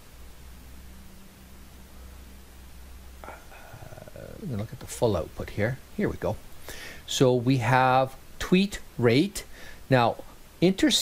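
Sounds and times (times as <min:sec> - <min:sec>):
faint hiss: 0:00.0 - 0:11.0
low steady hum: 0:00.0 - 0:11.0
person saying uh: 0:03.2 - 0:05.2.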